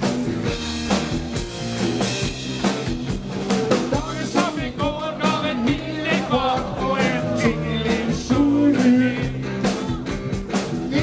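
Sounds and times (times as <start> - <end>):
drum kit beat: 0.0 - 11.0
electric guitar: 0.0 - 11.0
man singing: 3.9 - 10.0, 10.8 - 11.0.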